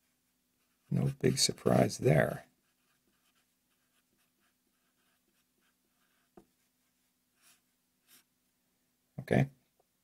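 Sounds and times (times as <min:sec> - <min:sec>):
marker writing on paper: 0:02.6 - 0:06.5, 0:07.4 - 0:08.3.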